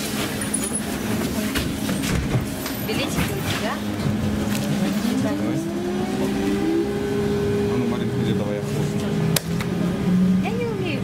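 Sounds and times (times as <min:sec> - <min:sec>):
road noise: 0:00.0 - 0:11.0
traction motor whining: 0:03.4 - 0:10.6.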